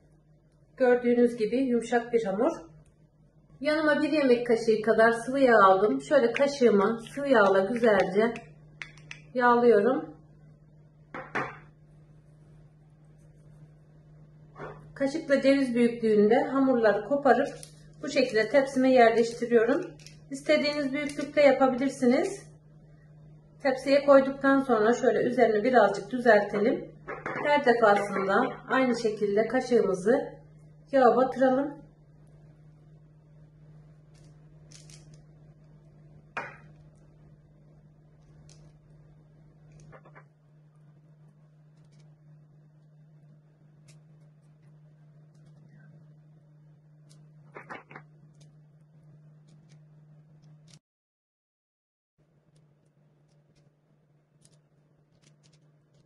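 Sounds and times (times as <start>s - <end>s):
ceramic bowl knocking on wood: 11.2s - 11.7s.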